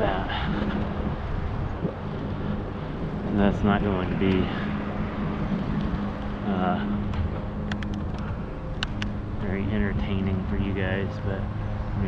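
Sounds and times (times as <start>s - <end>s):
low rumble of riding: 0.0s - 12.0s
wind rushing over microphone: 0.0s - 12.0s.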